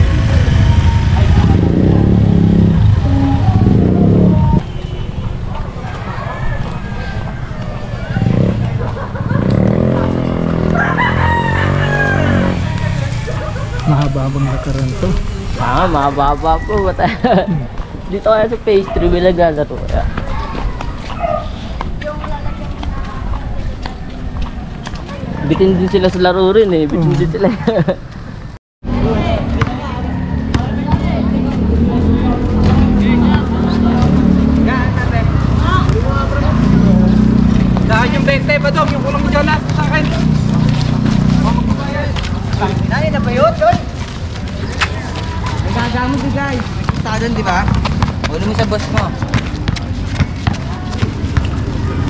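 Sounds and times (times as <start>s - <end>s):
basketball players shouting: 0.0s - 4.6s, 29.1s - 52.0s
rooster crowing: 6.0s - 8.5s, 10.6s - 13.6s.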